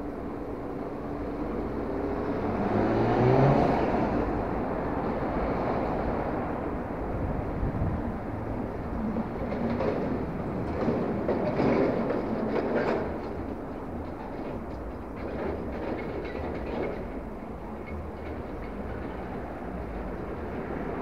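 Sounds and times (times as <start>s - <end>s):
train wheels rattling on bridge: 8.3s - 21.0s.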